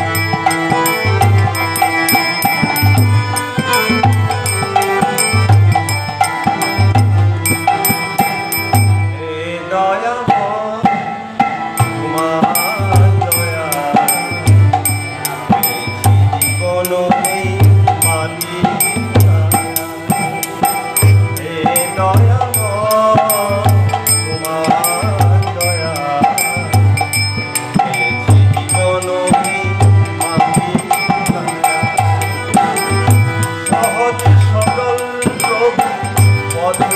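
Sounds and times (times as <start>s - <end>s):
tabla drum beat: 0.0s - 9.5s, 10.2s - 36.9s
harmonium chords: 0.0s - 36.9s
man singing: 0.0s - 36.9s.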